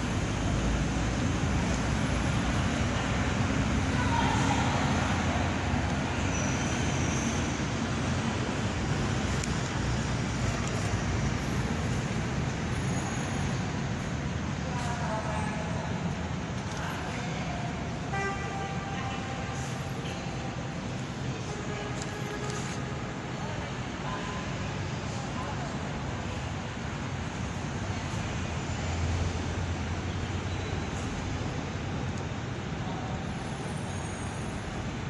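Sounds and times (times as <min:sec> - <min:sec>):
street traffic rumble: 0:00.0 - 0:35.0
faint indistinct voices: 0:00.4 - 0:35.0.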